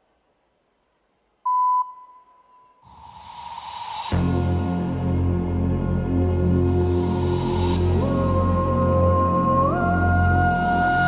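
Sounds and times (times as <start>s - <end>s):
hiss: 2.8s - 4.8s, 6.4s - 8.6s
routine music: 4.1s - 9.5s.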